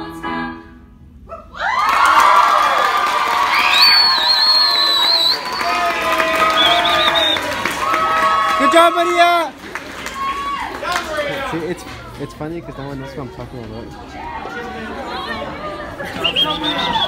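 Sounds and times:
audience cheering and applauding: 0:01.6 - 0:12.3.

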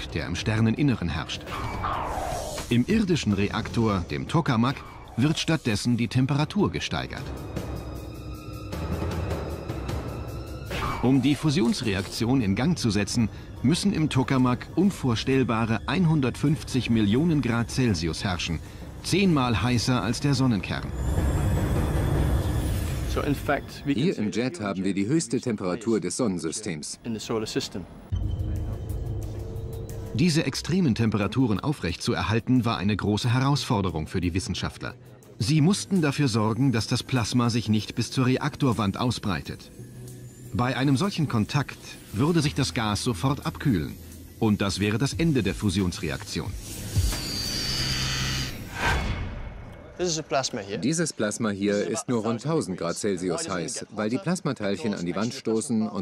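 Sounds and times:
faint high whistling tones: 0:46.3 - 0:48.6
whoosh: 0:46.6 - 0:50.0.

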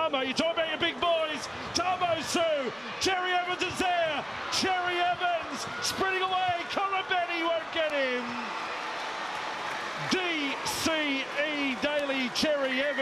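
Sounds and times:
excited man commentating: 0:00.0 - 0:08.6, 0:09.9 - 0:13.0
stadium crowd noise: 0:00.0 - 0:13.0.

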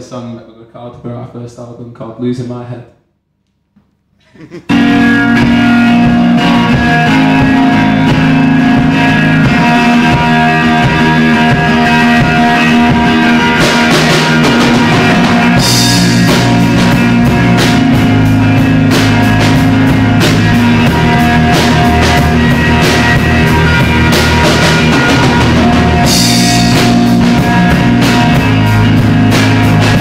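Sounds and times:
drum kit: 0:04.6 - 0:30.0
rock band playing live: 0:04.7 - 0:30.0.

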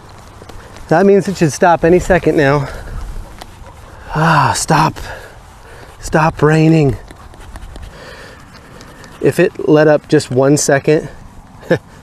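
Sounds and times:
wind rumble on microphone: 0:01.7 - 0:04.2.

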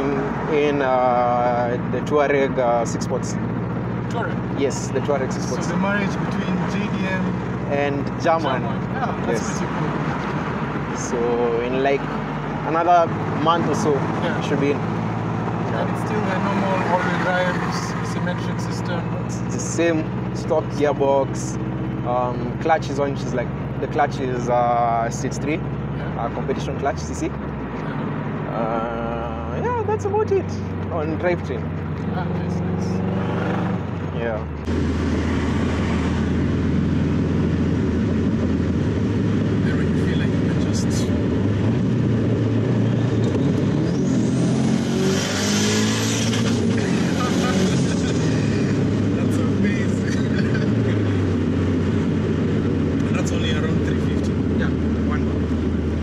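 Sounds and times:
car engine under throttle: 0:00.0 - 0:56.0
conversation fragments: 0:00.0 - 0:56.0.

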